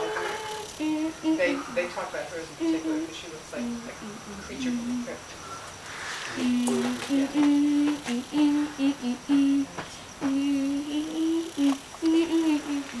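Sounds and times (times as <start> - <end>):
person humming a tune: 0.0 - 1.8, 6.3 - 13.0.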